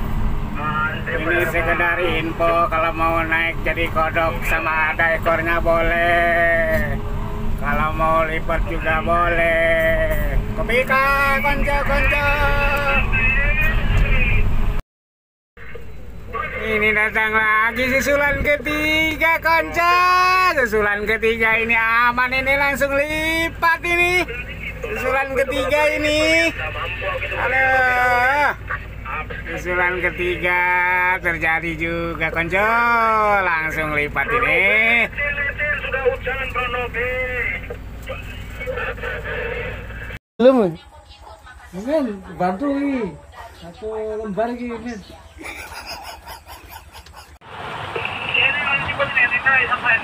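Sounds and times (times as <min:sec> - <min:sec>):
excavator diesel engine running: 0:00.0 - 0:14.8, 0:15.6 - 0:40.2, 0:45.1 - 0:50.0
man talking: 0:00.6 - 0:14.5, 0:15.6 - 0:40.8, 0:48.0 - 0:50.0
man's voice: 0:00.6 - 0:14.8, 0:15.6 - 0:40.8, 0:48.0 - 0:50.0.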